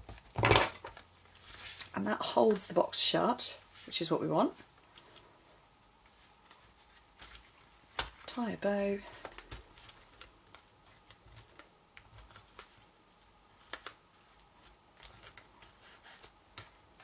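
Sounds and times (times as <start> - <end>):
fingers rustling twine: 0.9 - 17.0.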